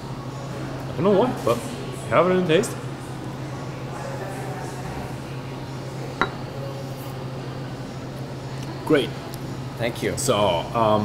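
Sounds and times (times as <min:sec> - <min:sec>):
glass clinking on wooden bar: 0:06.2 - 0:06.4.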